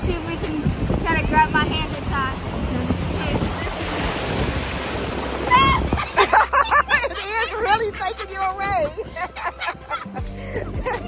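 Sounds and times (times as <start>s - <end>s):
wind on microphone: 0.0s - 7.0s, 7.6s - 9.3s
surf breaking over shallow water: 0.1s - 7.3s.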